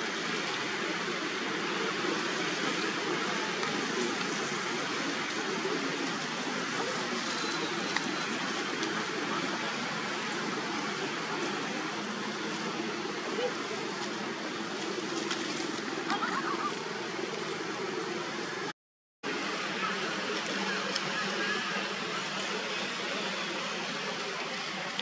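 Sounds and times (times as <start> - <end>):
rushing background noise: 0.0 - 25.0.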